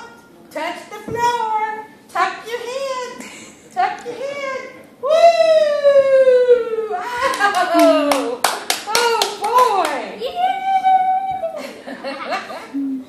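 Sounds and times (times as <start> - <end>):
hand claps: 7.2 - 10.0.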